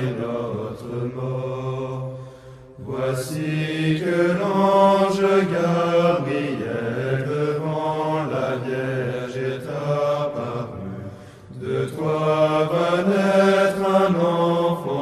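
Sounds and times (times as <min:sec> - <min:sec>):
slow chant-like hymn singing: 0:00.0 - 0:15.0.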